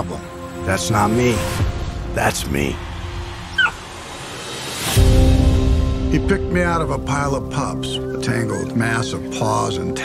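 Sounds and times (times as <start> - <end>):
puppy whimpering: 3.6 - 3.8.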